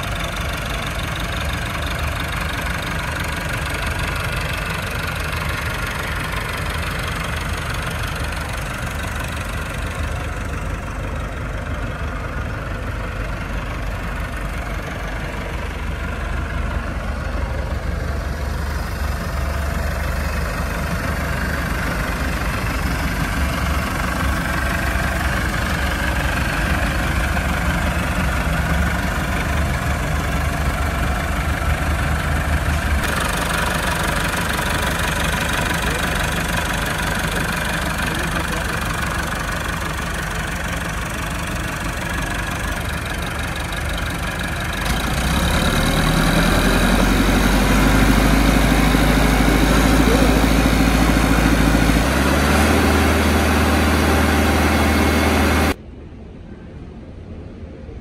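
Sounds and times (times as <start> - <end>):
tractor diesel engine idling: 0.0 - 55.8.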